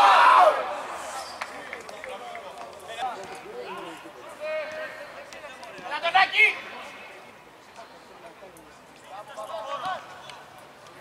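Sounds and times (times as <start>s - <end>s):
players shouting: 0.0s - 1.2s.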